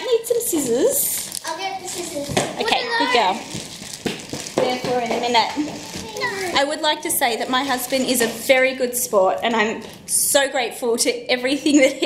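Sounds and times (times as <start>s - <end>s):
paper and packaging rustling: 0.6s - 9.0s.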